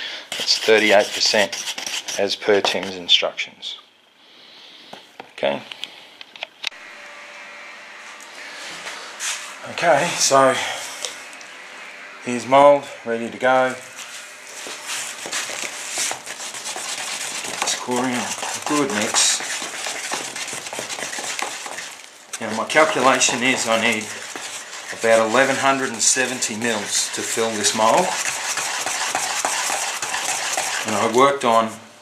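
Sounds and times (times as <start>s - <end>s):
resin stirred and scraped in tub: 0.3s - 3.1s, 9.2s - 31.8s.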